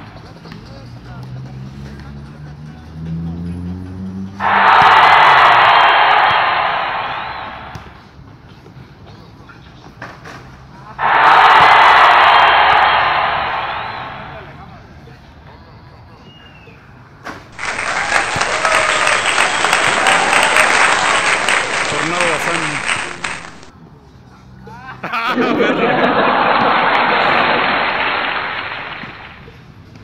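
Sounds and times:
crowd cheering and applause: 0:04.4 - 0:08.0, 0:11.0 - 0:14.6, 0:17.6 - 0:23.7, 0:25.3 - 0:29.5.

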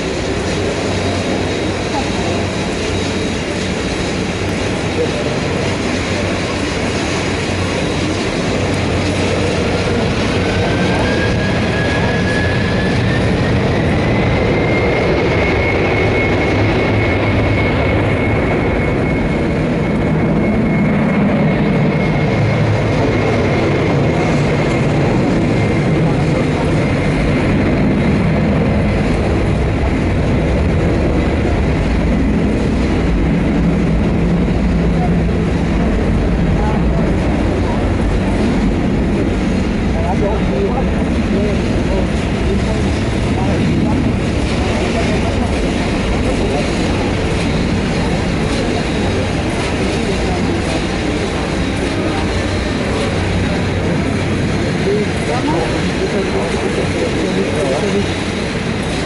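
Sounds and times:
jet engines spooling up: 0:00.0 - 0:59.0
thin high engine whine: 0:00.0 - 0:59.0.

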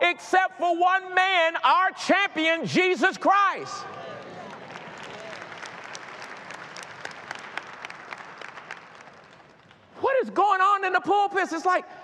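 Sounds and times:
crowd applauding: 0:03.8 - 0:10.0.

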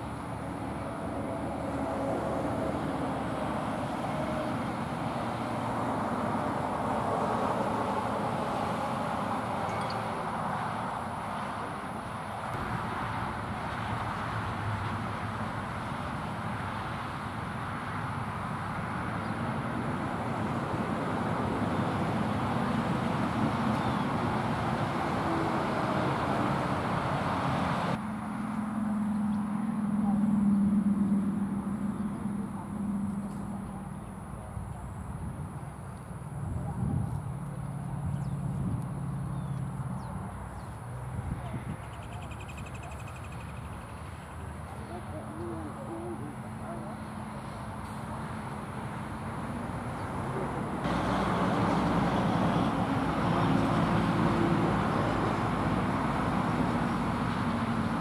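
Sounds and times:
low engine hum: 0:00.0 - 0:58.0
trucks driving past: 0:00.0 - 0:58.0.

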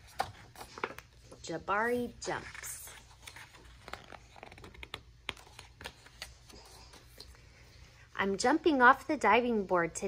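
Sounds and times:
book page turning: 0:00.0 - 0:01.4, 0:02.2 - 0:07.4.

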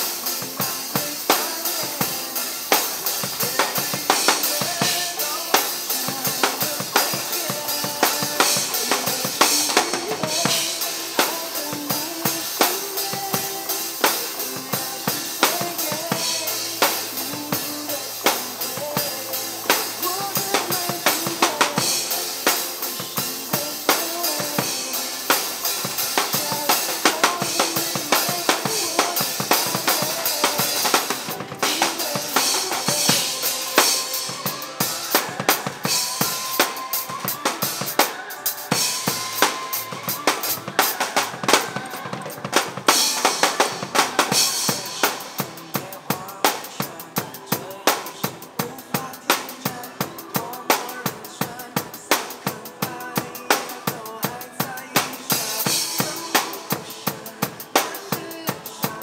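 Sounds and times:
acoustic drum kit playing: 0:00.0 - 0:59.0
pop song backing track: 0:00.0 - 0:59.0.

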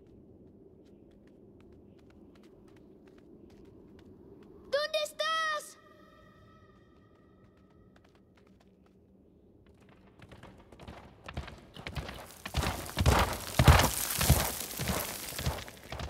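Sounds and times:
hooves galloping on dry ground: 0:00.0 - 0:04.9, 0:06.3 - 0:16.0.

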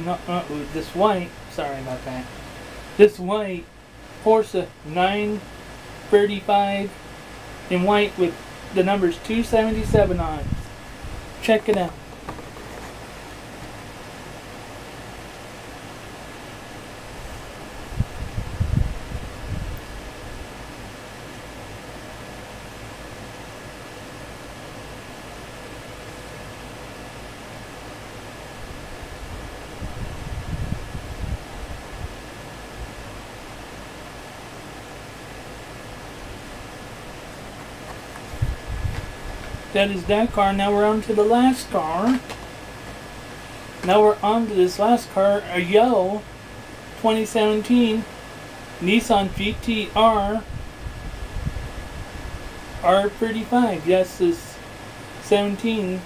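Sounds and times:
faint electrical hum: 0:00.0 - 0:56.0
room hiss: 0:00.0 - 0:56.0.

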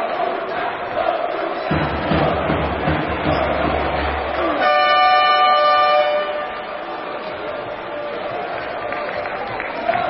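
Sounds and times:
arena crowd noise: 0:00.0 - 0:10.0
multi-toned game horn: 0:04.6 - 0:06.7.

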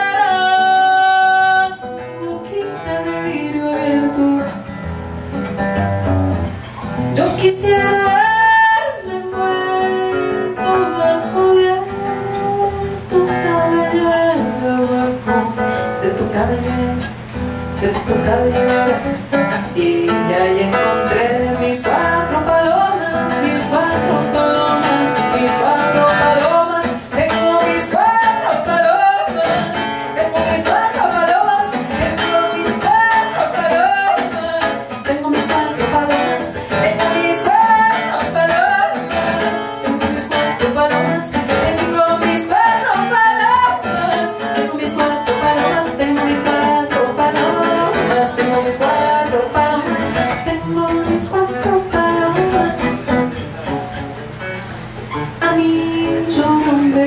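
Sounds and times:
woman singing into microphone: 0:00.0 - 0:04.7, 0:07.1 - 0:53.4, 0:55.2 - 0:57.0.

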